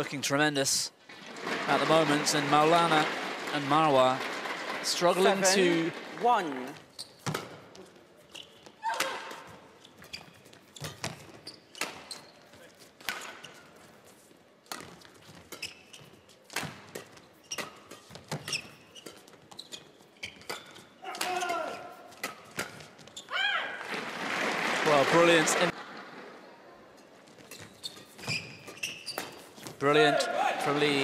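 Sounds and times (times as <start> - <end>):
short pitched squeaks: 27.5 - 29.5.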